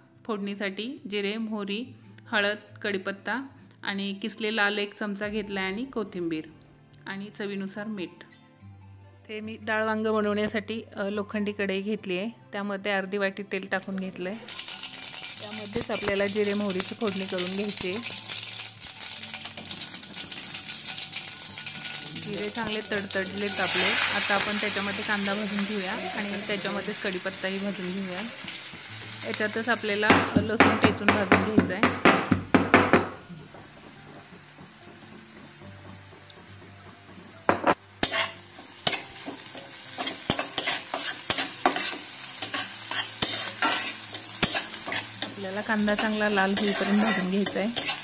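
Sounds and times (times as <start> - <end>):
seeds sizzling in hot oil: 14.3 - 30.4, 33.2 - 48.0
spatula scraping an iron pan: 38.0 - 39.0, 40.0 - 46.0, 46.6 - 48.0.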